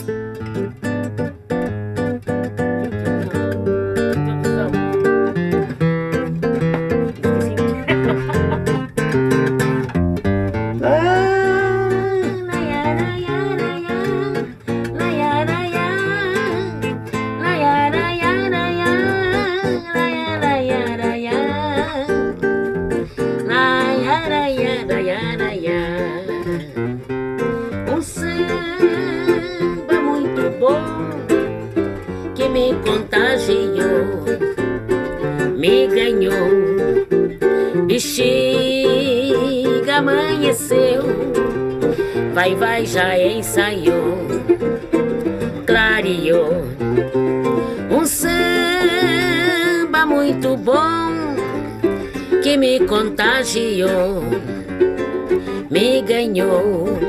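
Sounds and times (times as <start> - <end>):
acoustic guitar samba: 0.0 - 57.0.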